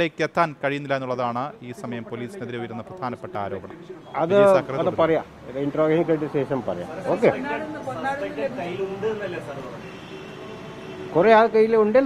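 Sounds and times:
men speaking: 0:00.0 - 0:12.0.

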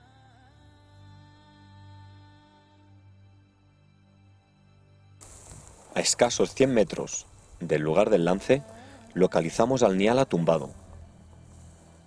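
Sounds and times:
music of long held tones: 0:00.0 - 0:12.0
outdoor steady hiss: 0:05.2 - 0:12.0
man's voice: 0:05.9 - 0:10.9.

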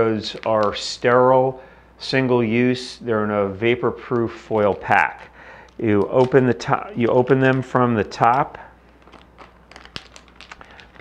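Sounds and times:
foil pack crinkling: 0:00.0 - 0:01.2, 0:03.4 - 0:11.0.

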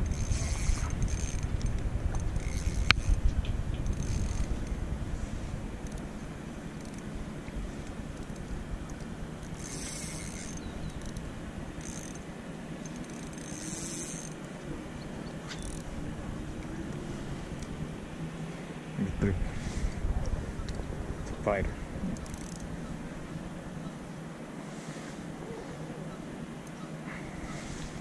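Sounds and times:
fishing reel ratchet clicking: 0:00.0 - 0:04.8, 0:05.8 - 0:06.1, 0:06.8 - 0:07.1, 0:07.8 - 0:12.2, 0:12.8 - 0:14.4, 0:15.6 - 0:15.9, 0:22.2 - 0:22.7.

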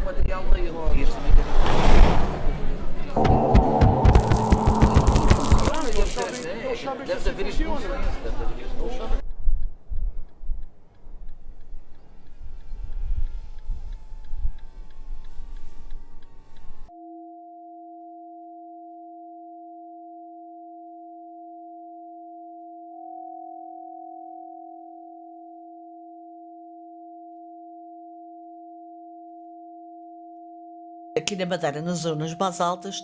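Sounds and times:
electronic sine tone drone: 0:03.2 - 0:06.5, 0:13.5 - 0:31.2.

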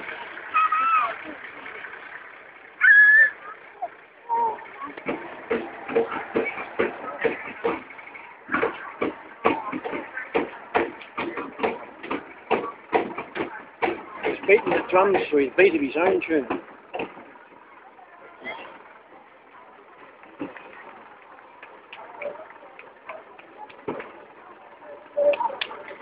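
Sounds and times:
voices: 0:00.0 - 0:26.0.

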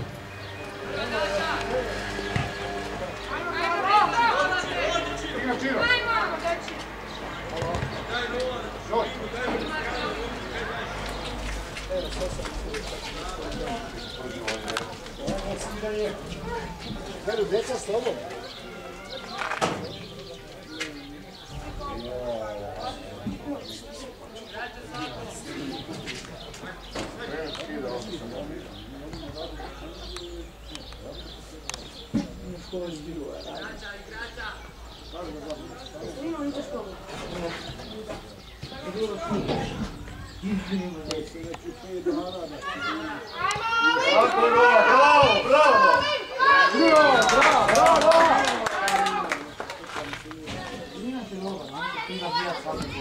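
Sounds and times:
children chattering and calling: 0:00.0 - 0:53.0
footballs being kicked: 0:07.6 - 0:08.0.

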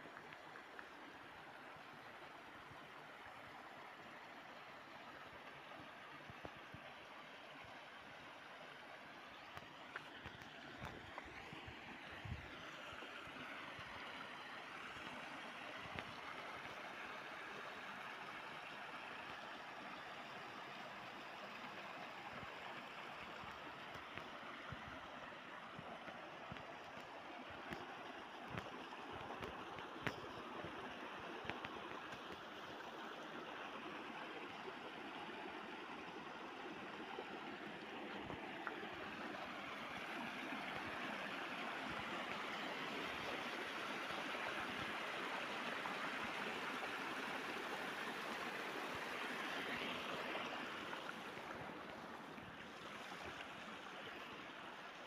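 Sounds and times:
stream water over rocks: 0:00.0 - 0:55.0.

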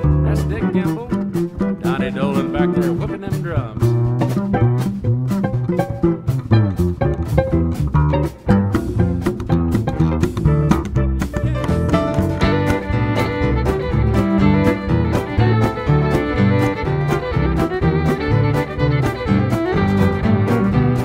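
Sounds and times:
fiddle melody: 0:00.0 - 0:21.0
western swing band playing: 0:00.0 - 0:21.0.

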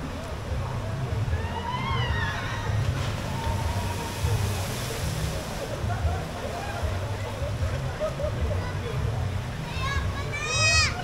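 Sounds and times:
water splashing: 0:02.4 - 0:07.4.

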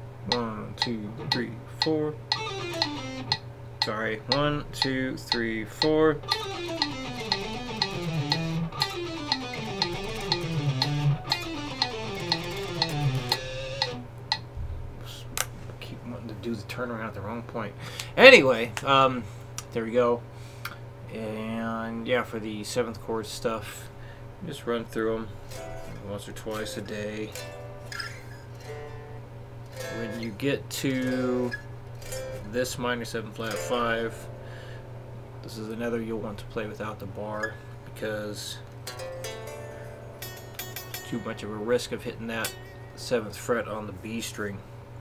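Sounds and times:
amplifier hum: 0:00.0 - 0:15.0
electric guitar picking scales: 0:00.3 - 0:01.6, 0:02.2 - 0:05.0, 0:06.2 - 0:14.4.

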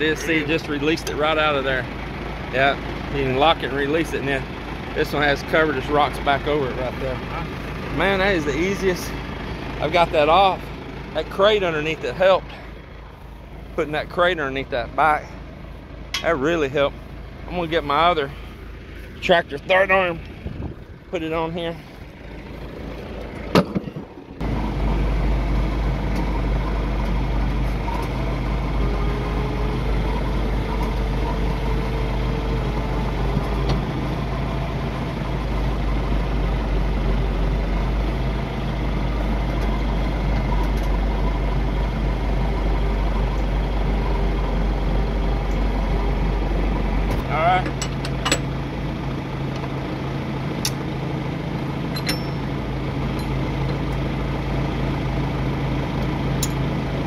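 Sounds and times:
tractor engine idling: 0:00.0 - 0:57.0
sharp metal clanks: 0:16.1 - 0:16.5, 0:47.6 - 0:48.5, 0:51.9 - 0:52.5.

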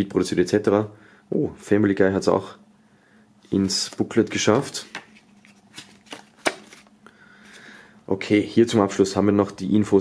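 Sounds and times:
paper pages turning: 0:03.5 - 0:06.9.

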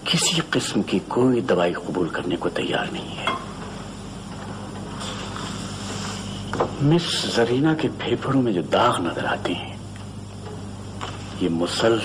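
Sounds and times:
steady hiss: 0:00.0 - 0:12.0
low hum: 0:03.2 - 0:05.0.

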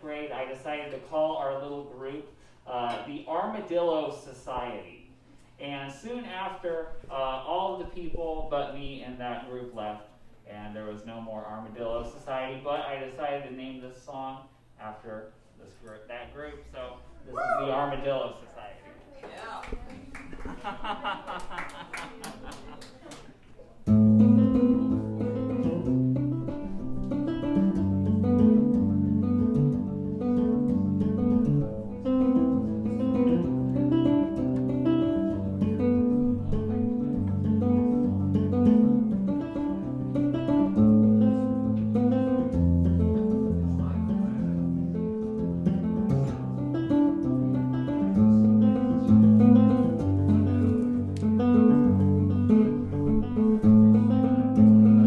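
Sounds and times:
electric bass guitar playing: 0:23.9 - 0:55.0.

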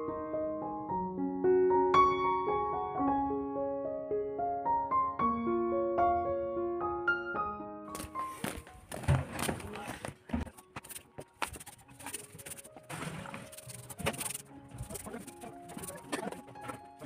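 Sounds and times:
soft background music: 0:05.4 - 0:17.0
broom sweeping concrete: 0:10.8 - 0:16.7.

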